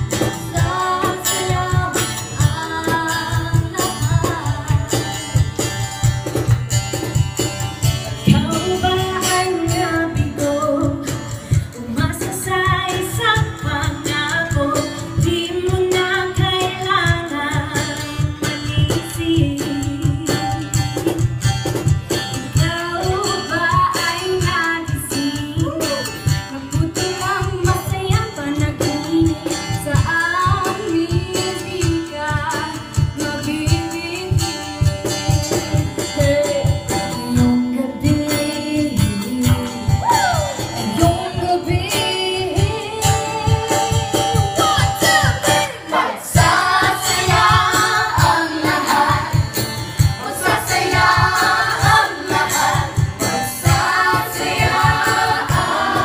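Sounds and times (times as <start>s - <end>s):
young women singing: 0.0s - 5.5s, 8.2s - 20.7s, 22.4s - 56.0s.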